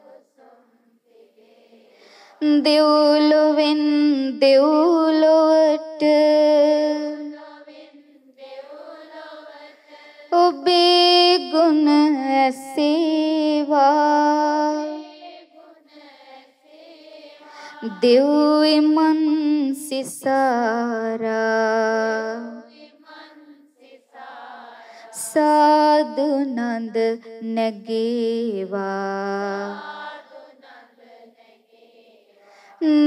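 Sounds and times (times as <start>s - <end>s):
person singing devotional verse: 0.0s - 33.0s
person chanting: 17.3s - 23.5s, 32.8s - 33.0s.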